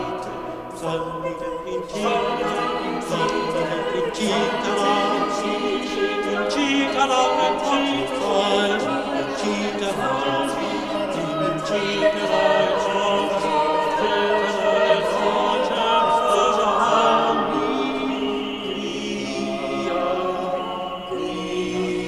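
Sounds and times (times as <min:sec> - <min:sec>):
small mixed choir singing: 0:00.0 - 0:22.0.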